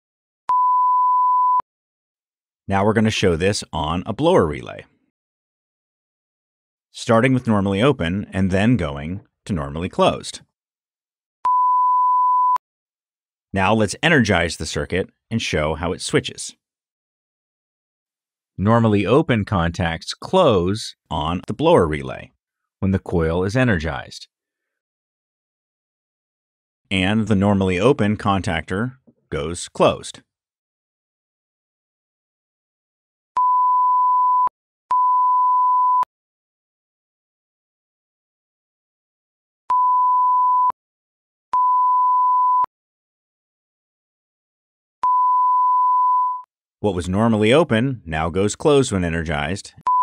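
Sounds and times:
multimeter continuity beep: 0:00.5 - 0:01.6, 0:11.5 - 0:12.6, 0:33.4 - 0:36.1, 0:39.7 - 0:40.8, 0:41.6 - 0:42.7, 0:45.0 - 0:46.5
multimeter continuity beeps: 0:11.5 - 0:12.6.

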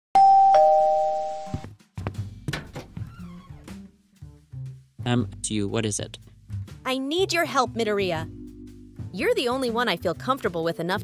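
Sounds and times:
two-note doorbell chime: 0:00.2 - 0:01.6.

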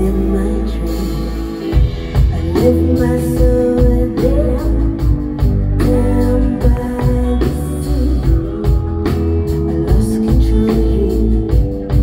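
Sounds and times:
drum kit: 0:00.0 - 0:12.0
electric guitar: 0:00.0 - 0:12.0
keyboards: 0:00.0 - 0:12.0
sustained bass notes: 0:00.0 - 0:12.0.

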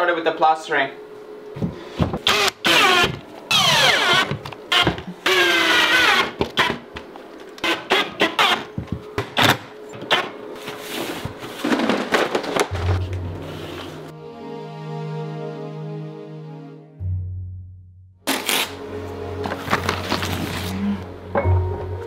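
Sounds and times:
cordless drill motor whining: 0:02.2 - 0:06.8.

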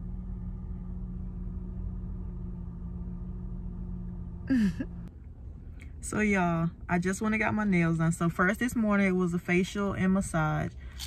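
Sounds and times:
car idling hum: 0:00.0 - 0:11.0.

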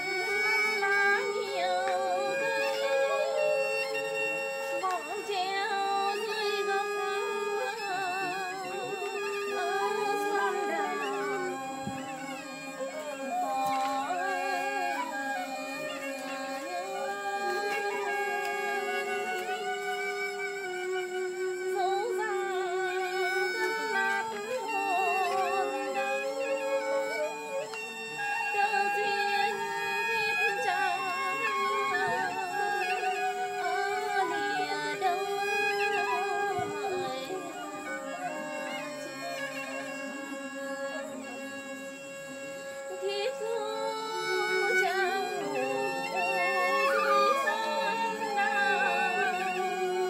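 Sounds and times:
woman singing folk song: 0:00.0 - 0:20.5, 0:21.5 - 0:41.9, 0:42.9 - 0:50.0
flute long held notes: 0:00.0 - 0:50.0.

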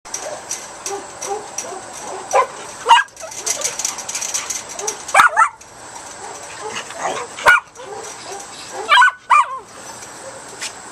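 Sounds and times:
small dog barking: 0:06.6 - 0:09.6.

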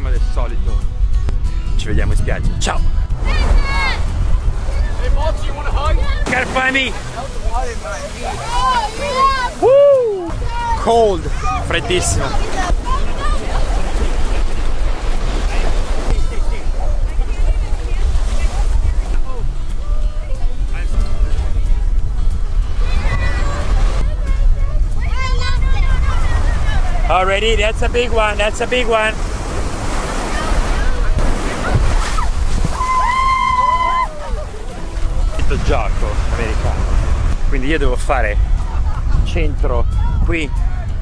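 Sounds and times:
wind rumbling on microphone: 0:00.0 - 0:41.0
ocean surf breaking: 0:02.0 - 0:41.0
children calling: 0:08.0 - 0:14.0, 0:29.9 - 0:35.4
person shouting long and high: 0:08.6 - 0:10.3, 0:32.8 - 0:34.4.

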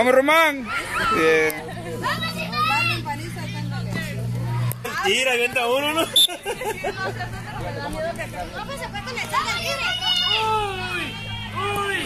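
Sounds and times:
children talking and calling out: 0:00.5 - 0:05.0, 0:06.4 - 0:12.0
children shouting high-pitched: 0:02.0 - 0:03.0, 0:09.2 - 0:12.0.

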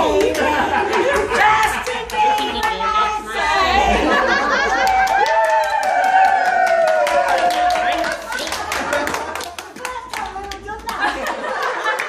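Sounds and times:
hand clapping: 0:00.0 - 0:02.9, 0:04.6 - 0:12.0.

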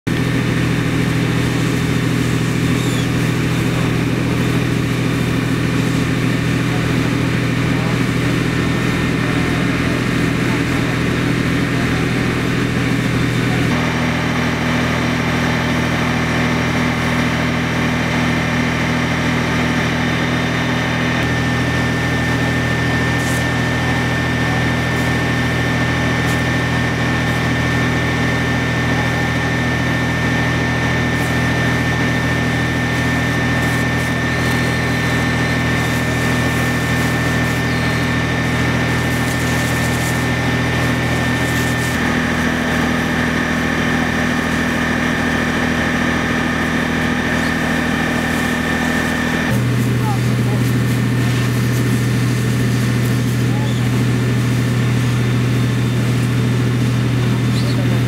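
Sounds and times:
fire engine pump drone: 0:00.0 - 0:58.0
thin steady whine: 0:00.1 - 0:58.0.

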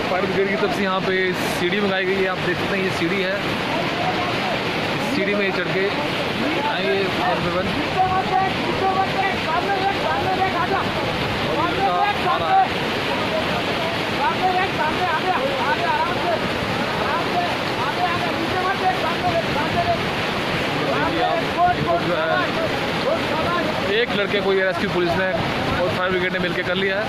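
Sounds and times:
people talking and calling: 0:00.0 - 0:27.0
river rushing: 0:00.0 - 0:27.0.

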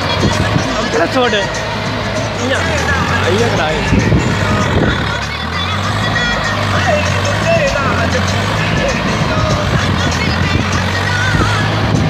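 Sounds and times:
tractor diesel engine under load: 0:00.0 - 0:12.0.

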